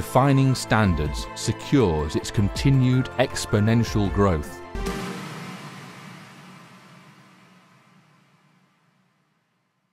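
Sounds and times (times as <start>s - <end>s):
rushing noise: 4.8s - 8.6s.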